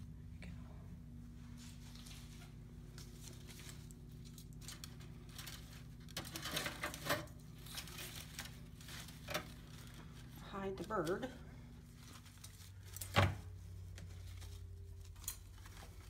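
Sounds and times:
artificial stems rustling and crinkling: 1.0s - 16.0s.

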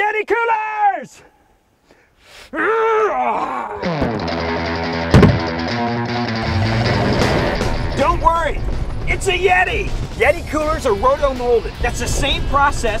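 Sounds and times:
man straining yell: 2.5s - 4.0s
loud music hit: 3.8s - 10.8s
music: 3.8s - 13.0s.

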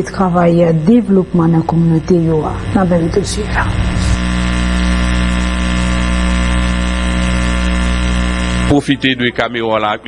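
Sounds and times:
loud low buzzing hum: 0.0s - 9.0s.

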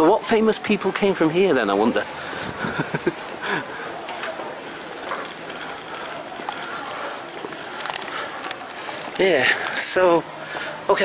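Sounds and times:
street background hiss: 0.0s - 11.0s.

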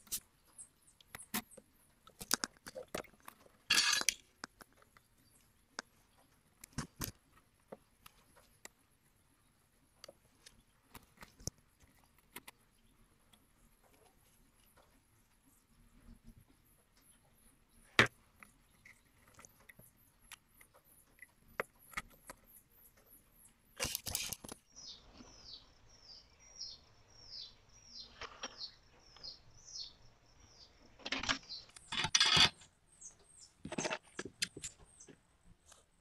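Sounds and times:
bird chirping: 0.0s - 2.1s, 12.5s - 35.3s.

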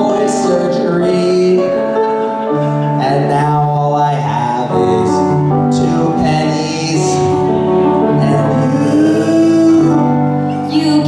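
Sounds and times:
amplified music accompaniment: 0.0s - 11.0s
man singing into a microphone: 0.0s - 11.0s.

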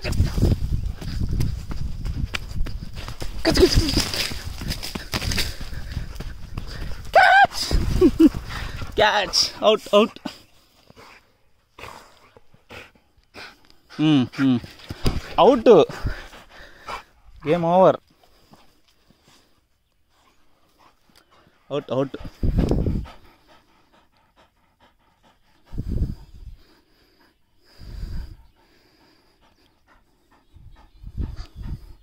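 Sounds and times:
quick footsteps on sandy ground: 0.0s - 12.8s, 14.4s - 19.5s
leaves rustling: 2.9s - 9.5s.

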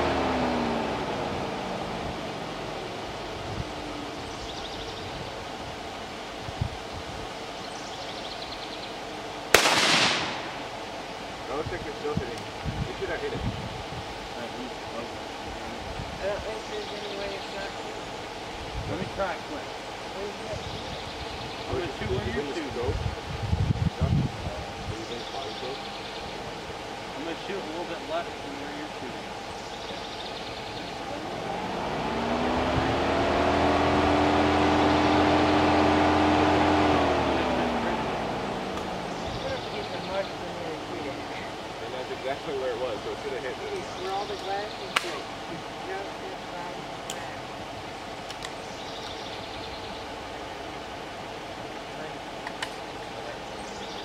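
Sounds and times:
vehicle engine passing by: 0.0s - 5.3s, 30.6s - 46.8s
sharp crack: 9.5s - 10.8s, 44.9s - 45.4s.

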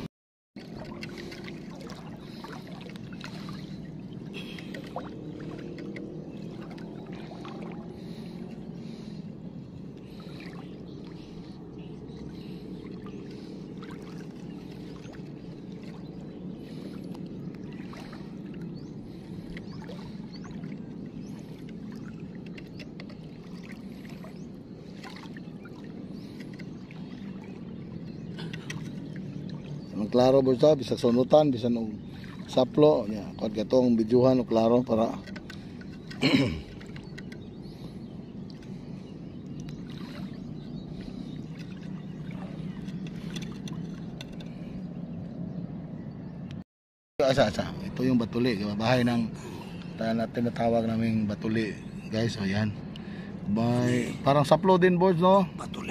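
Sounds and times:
steady low rumble: 0.0s - 46.6s
water sloshing from wading: 0.6s - 46.2s.

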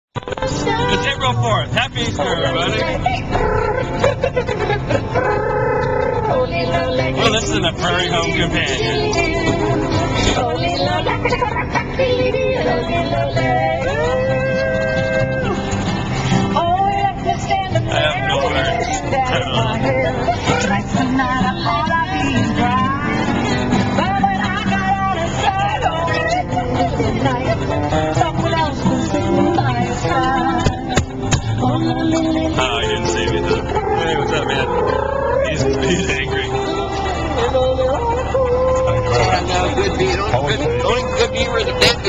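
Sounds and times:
road and engine rumble: 0.1s - 42.0s
car radio music with singing: 0.2s - 42.0s.

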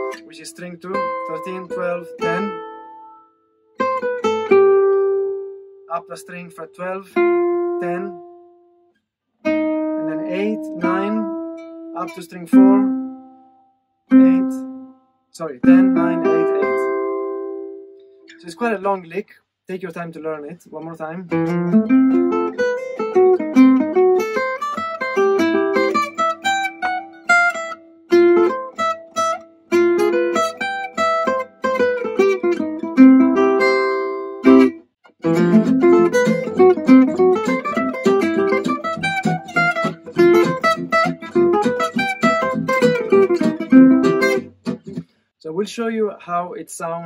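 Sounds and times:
fast acoustic jazz guitar lick: 0.0s - 2.8s, 5.9s - 8.2s, 9.4s - 13.2s, 14.1s - 14.7s, 15.4s - 17.3s, 19.8s - 45.1s.

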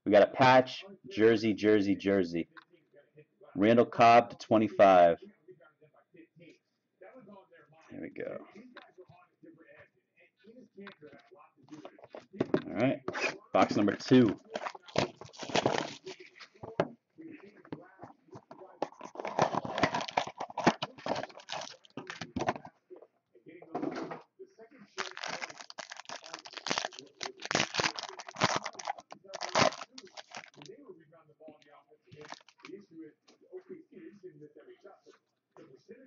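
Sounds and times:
shrink wrap and foil tearing: 14.4s - 16.2s, 18.8s - 22.4s, 25.0s - 30.7s, 32.2s - 32.7s.

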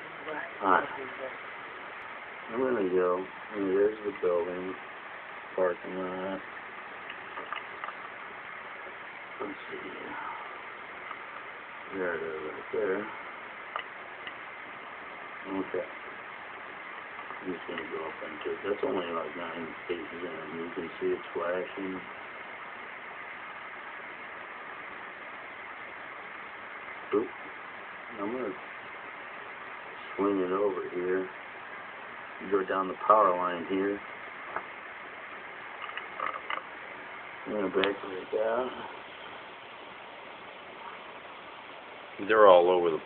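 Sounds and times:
steady background hiss: 0.0s - 43.0s.

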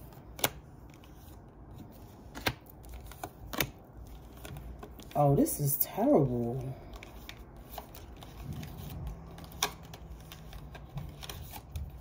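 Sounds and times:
cards snapping on wooden table: 0.3s - 0.6s.

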